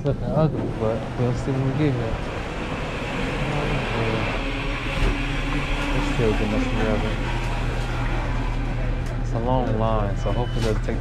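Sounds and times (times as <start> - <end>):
kitchen equipment hum: 0.0 - 11.0.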